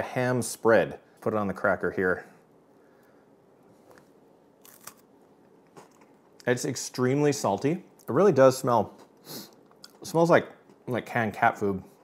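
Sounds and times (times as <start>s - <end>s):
cracker crunch bite: 3.9s - 5.1s.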